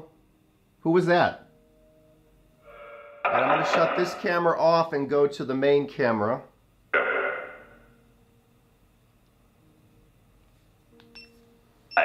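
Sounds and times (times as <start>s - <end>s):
harsh static burst: 2.7s - 4.7s.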